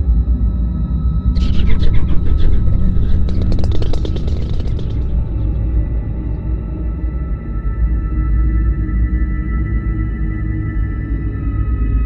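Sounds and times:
rapid flurry of clicks: 0:01.4 - 0:06.6
deep electronic drone: 0:01.4 - 0:07.3.

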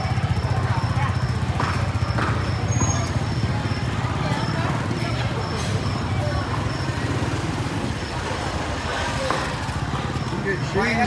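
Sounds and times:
market chatter: 0:00.0 - 0:11.0
motor scooter engine running: 0:00.0 - 0:11.0.

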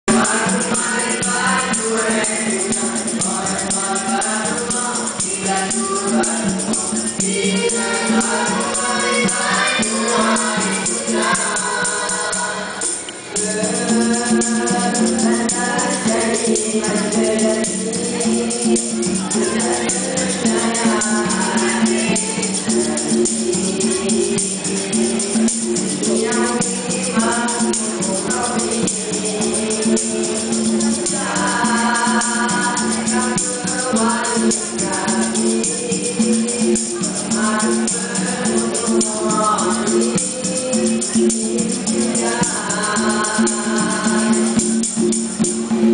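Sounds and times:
boys singing in harmony: 0:00.1 - 0:45.9
light hand percussion: 0:00.1 - 0:45.9.

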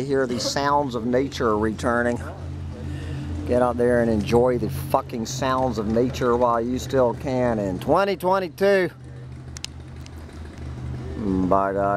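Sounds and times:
distant airboat engine drone: 0:00.0 - 0:11.9
faint clicks: 0:09.5 - 0:10.2.

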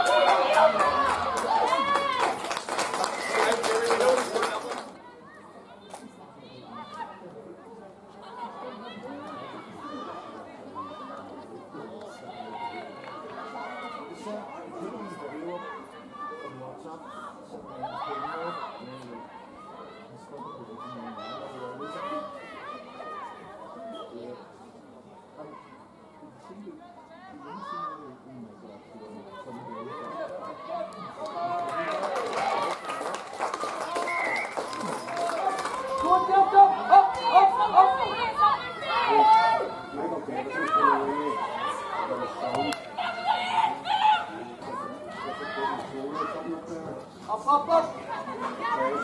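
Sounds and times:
players shouting: 0:00.0 - 0:02.5, 0:33.7 - 0:46.6.

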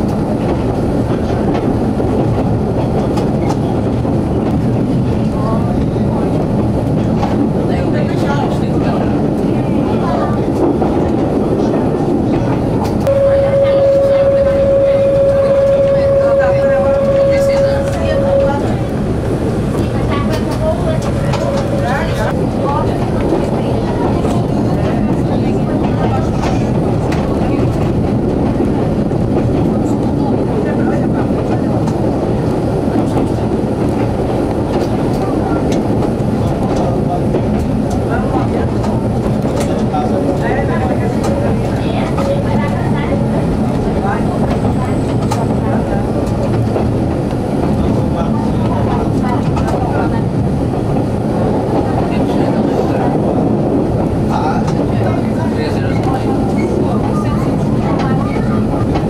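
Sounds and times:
diesel railcar engine drone: 0:00.0 - 0:59.0
train wheels on rails: 0:00.0 - 0:59.0.

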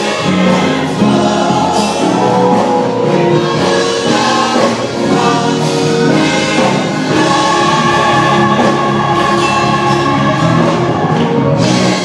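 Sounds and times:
choir singing gospel: 0:00.0 - 0:12.0.

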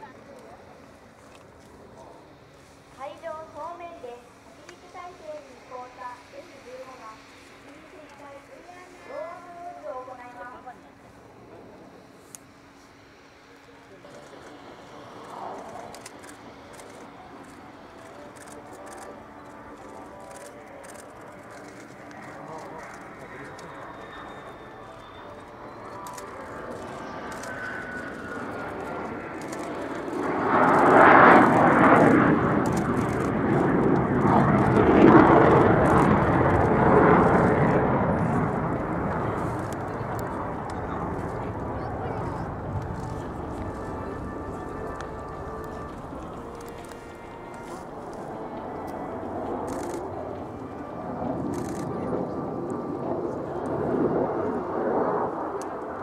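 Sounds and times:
distant jet engine rush: 0:00.0 - 0:56.0.

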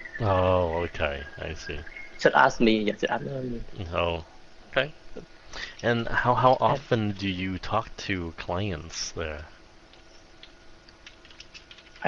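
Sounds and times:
faint steady hum: 0:00.0 - 0:12.0
keyboard typing: 0:09.9 - 0:12.0.

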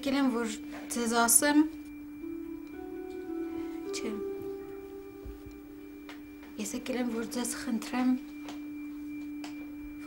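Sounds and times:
sustained music note: 0:00.0 - 0:10.0.

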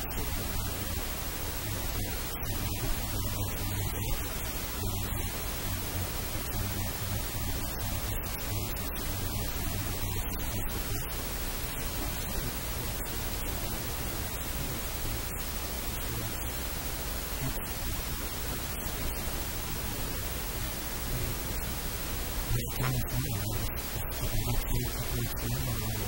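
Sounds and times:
steady static hiss: 0:00.0 - 0:26.0.

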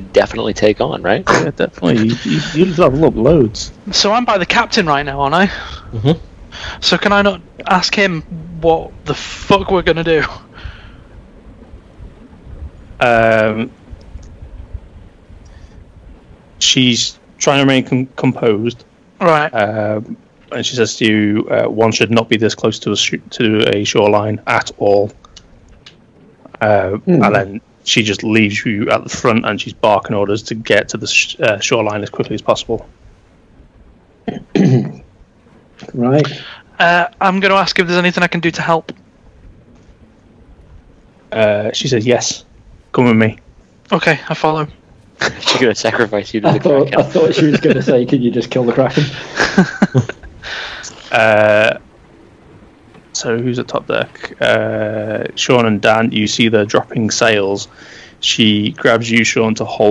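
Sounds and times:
faint steady hiss: 0:00.0 - 0:59.9
sea waves: 0:00.0 - 0:59.9
wind: 0:00.0 - 0:59.9.

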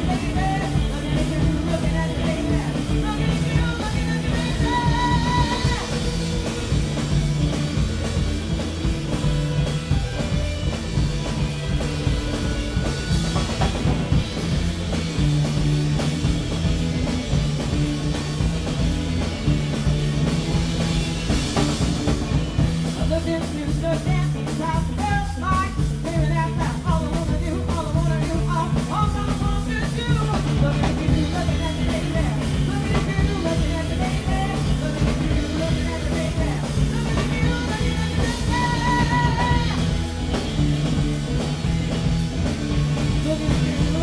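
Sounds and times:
woman singing: 0:00.0 - 0:06.2, 0:23.0 - 0:40.0, 0:42.9 - 0:44.0
drum kit: 0:00.0 - 0:44.0
electric bass guitar: 0:00.0 - 0:44.0.

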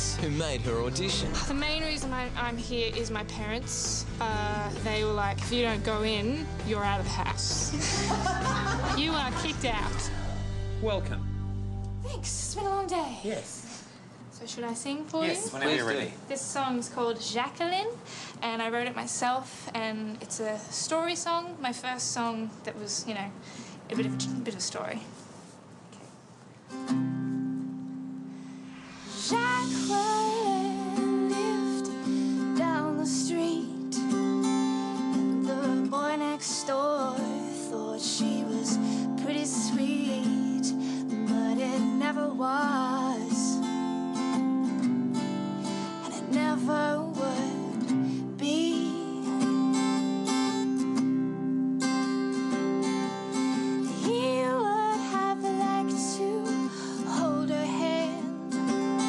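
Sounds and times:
acoustic guitar: 0:00.0 - 0:17.5, 0:23.5 - 0:59.0
woman singing: 0:01.3 - 0:10.3, 0:12.0 - 0:13.3, 0:29.2 - 0:34.2, 0:35.0 - 0:43.9, 0:46.0 - 0:50.2, 0:53.8 - 0:59.0.

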